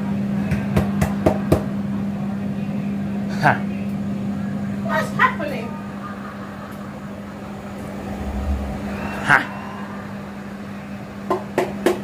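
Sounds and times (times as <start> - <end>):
low kitchen hum: 5.4 - 11.2.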